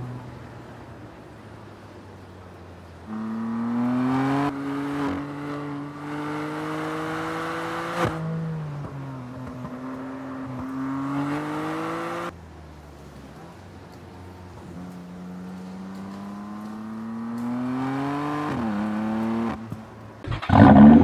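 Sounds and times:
car engine accelerating hard: 3.1 - 12.4, 14.5 - 21.0.

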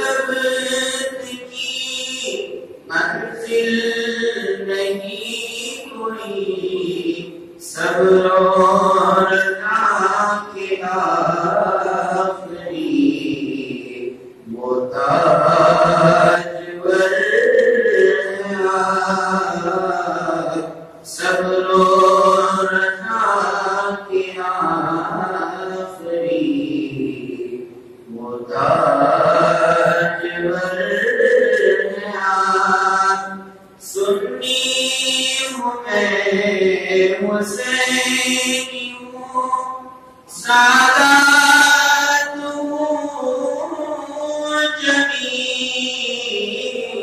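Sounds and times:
man chanting: 0.0 - 47.0.

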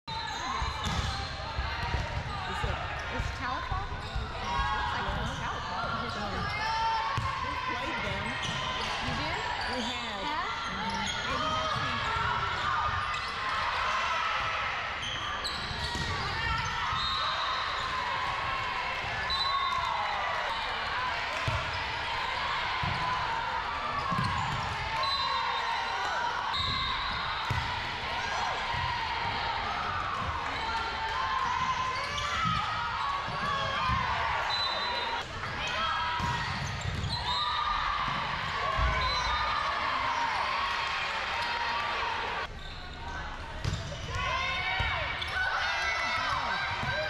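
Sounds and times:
ball bouncing on hardwood court: 0.7 - 1.2, 24.0 - 24.8, 27.4 - 27.7, 36.2 - 37.2, 43.6 - 44.1.

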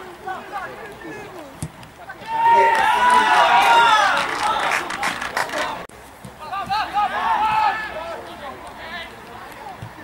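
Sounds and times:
men shouting outdoors: 0.0 - 9.2.

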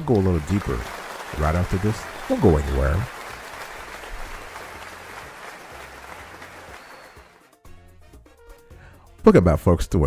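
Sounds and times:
applause: 0.0 - 7.6.

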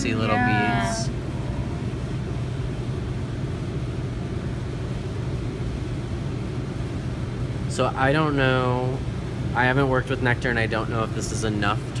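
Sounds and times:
machine hum: 0.0 - 12.0.

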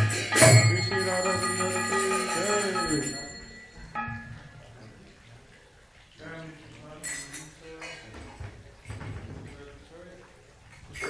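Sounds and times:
low indistinct voices: 0.0 - 11.0.

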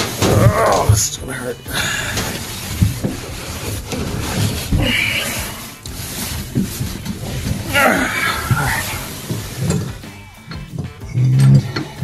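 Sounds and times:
rustling and scraping handling noise: 0.0 - 12.0
clothing rubbing on microphone: 1.7 - 10.2.

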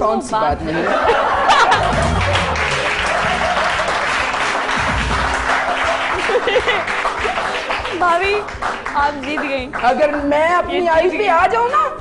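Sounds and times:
background music with bass line: 0.8 - 12.0
audience applauding: 1.6 - 10.3.

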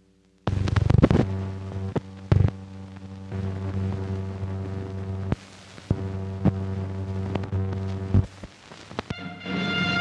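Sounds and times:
low electrical hum with crackle: 0.0 - 10.0.

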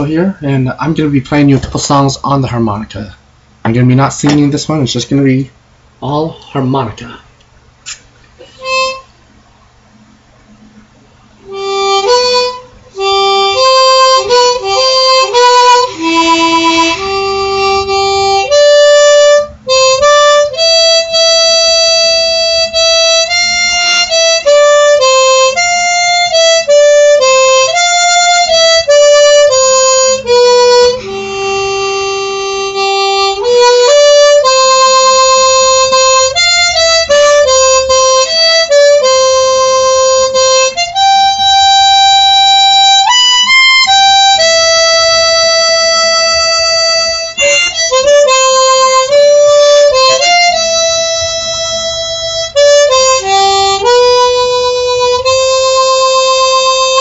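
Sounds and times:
harmonica melody: 7.9 - 9.2, 11.4 - 57.0.

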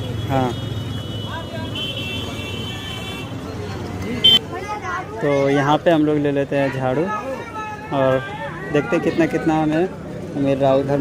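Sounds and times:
traffic: 0.0 - 11.0.

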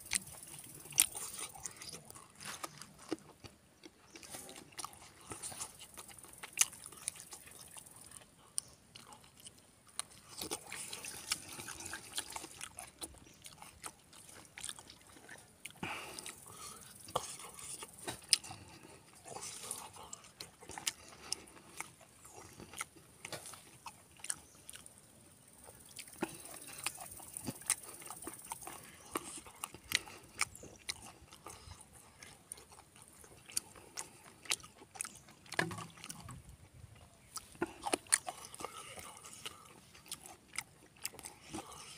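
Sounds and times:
chewing smacks: 0.0 - 41.9.

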